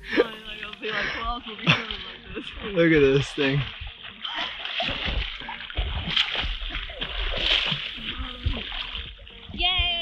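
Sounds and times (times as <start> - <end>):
water splashing and sloshing: 0.0 - 10.0.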